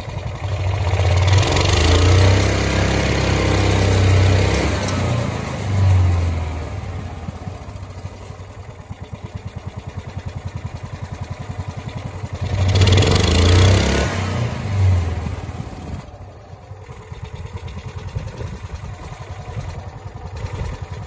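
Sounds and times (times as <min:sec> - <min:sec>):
single-cylinder engine revving and idling: 0:00.0 - 0:21.0.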